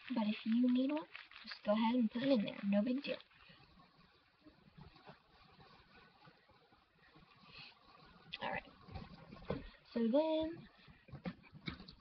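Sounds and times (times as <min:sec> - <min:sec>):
rustling of wrapped pads: 0:00.0 - 0:12.0.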